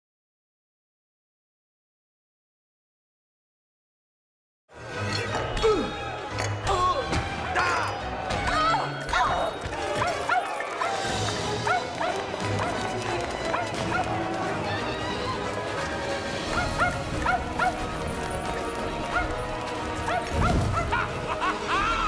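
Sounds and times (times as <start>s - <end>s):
film music: 4.7s - 22.0s.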